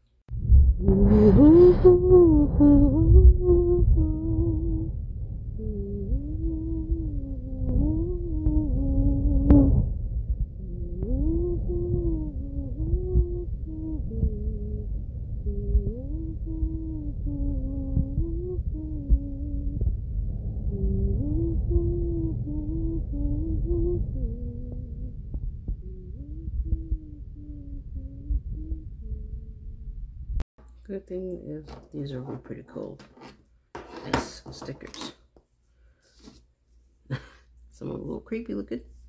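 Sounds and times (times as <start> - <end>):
low rumbling noise: 0.3 - 30.5
person humming a tune: 0.8 - 4.9, 5.6 - 9.9, 10.6 - 20.0, 20.7 - 30.0.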